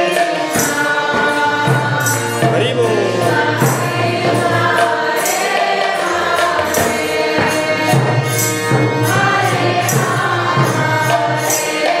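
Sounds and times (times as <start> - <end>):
group singing: 0.0 - 12.0
harmonium chords: 0.0 - 12.0.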